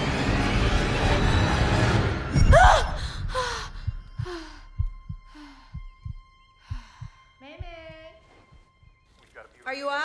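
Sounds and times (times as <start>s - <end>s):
heartbeat thuds: 2.4s - 9.1s
frightened breathing: 2.8s - 7.4s.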